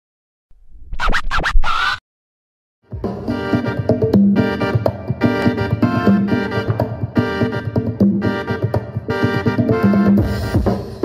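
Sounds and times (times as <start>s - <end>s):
record scratching: 0.7s - 2.0s.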